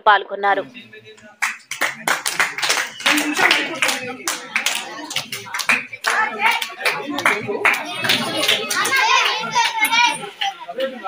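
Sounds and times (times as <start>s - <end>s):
voices talking: 0.0s - 11.0s
people clapping: 1.2s - 11.0s.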